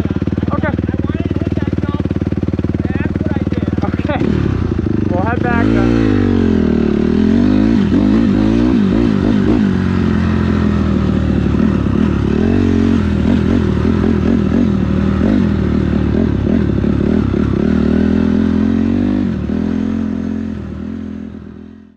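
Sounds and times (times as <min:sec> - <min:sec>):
dirt bike engine revving: 0:00.0 - 0:21.9.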